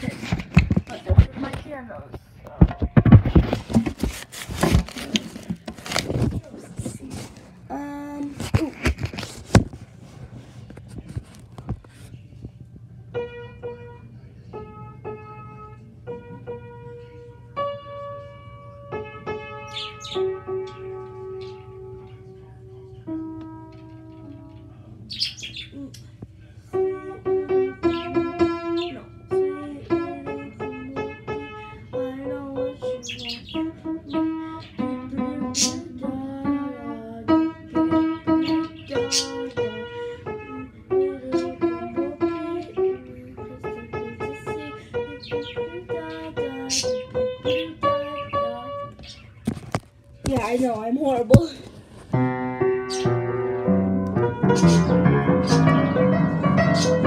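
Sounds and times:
upright piano notes: 0:13.1 - 0:24.7, 0:26.7 - 0:49.3, 0:50.6 - 0:57.0
birds chirping: 0:18.2 - 0:23.2, 0:23.9 - 0:26.1, 0:27.3 - 0:36.0, 0:37.4 - 0:57.0.

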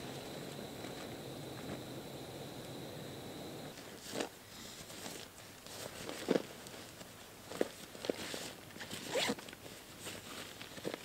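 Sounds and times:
camping gear rustling and scraping: 0:00.0 - 0:11.0.

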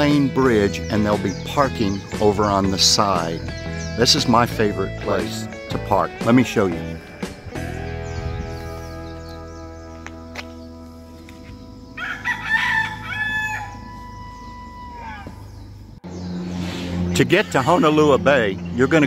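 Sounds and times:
long bird call: 0:00.0 - 0:19.0
sustained music chords: 0:00.0 - 0:19.0.

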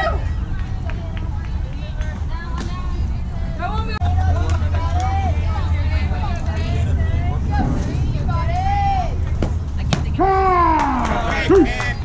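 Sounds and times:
steady low rumble: 0:00.0 - 0:12.0
voices calling and cheering: 0:00.0 - 0:12.0.

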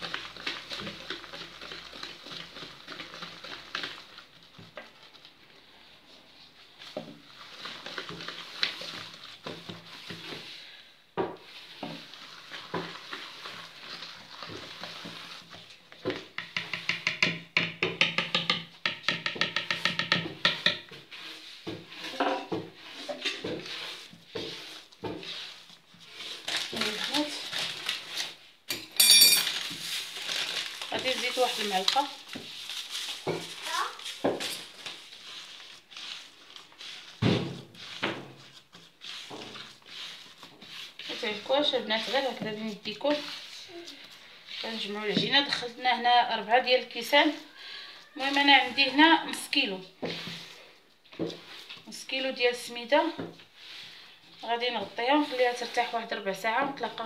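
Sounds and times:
whisk stirring dough in bowl: 0:00.0 - 0:28.5, 0:29.6 - 0:57.0.

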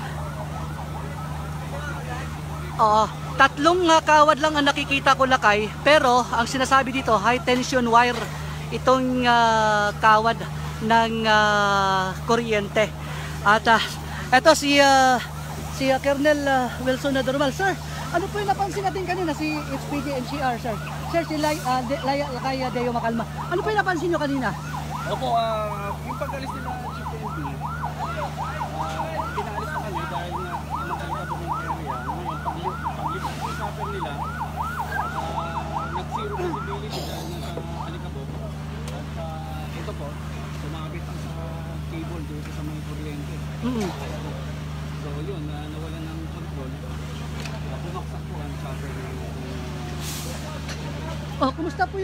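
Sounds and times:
emergency siren yelping: 0:00.0 - 0:51.9
faint voices: 0:00.0 - 0:52.0
low engine hum: 0:00.0 - 0:52.0
man talking: 0:25.0 - 0:51.2.

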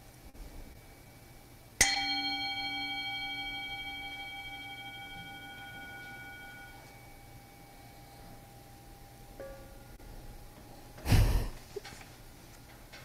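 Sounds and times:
bell ringing: 0:01.8 - 0:08.0.

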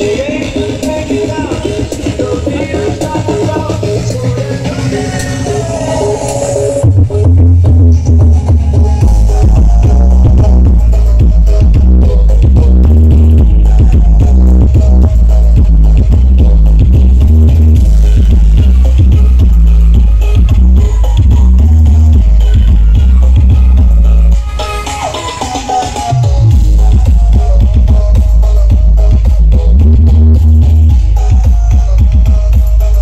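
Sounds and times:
electronic dance music: 0:00.0 - 0:33.0.

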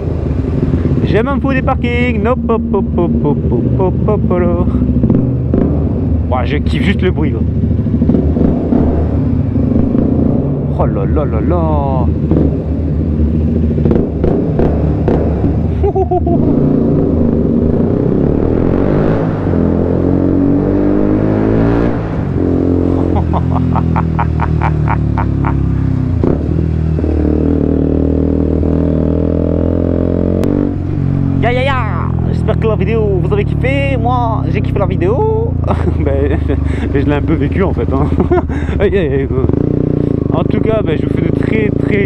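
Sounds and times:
motorcycle engine accelerating: 0:00.0 - 0:42.0.

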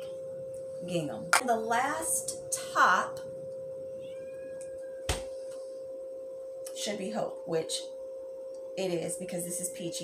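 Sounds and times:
faint high tone: 0:00.0 - 0:05.1
steady hum: 0:00.0 - 0:10.0.

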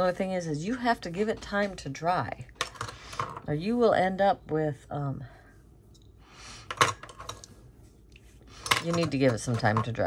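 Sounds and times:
soft rustle: 0:07.2 - 0:09.0.

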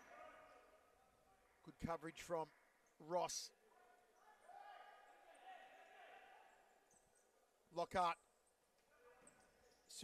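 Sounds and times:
indoor court game sounds: 0:00.0 - 0:10.0.

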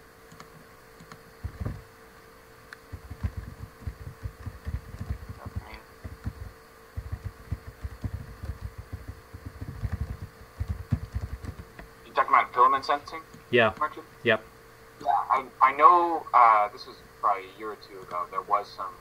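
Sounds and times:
electrical hum: 0:00.0 - 0:19.0
low thuds and rumbles: 0:01.4 - 0:01.8, 0:02.9 - 0:11.6.

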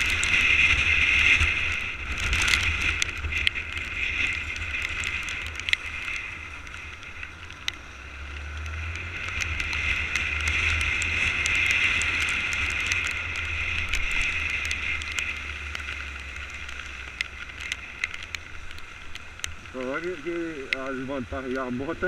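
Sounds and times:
raindrops clicking on camera: 0:00.0 - 0:22.0
wind noise: 0:00.0 - 0:22.0.

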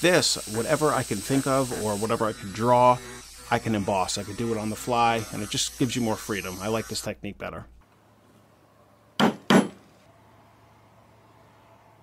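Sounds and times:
sharp knocks: 0:09.2 - 0:09.9.

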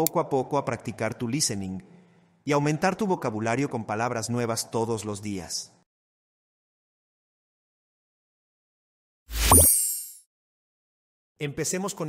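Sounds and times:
logo sound effect thump and shimmer: 0:09.3 - 0:10.2.

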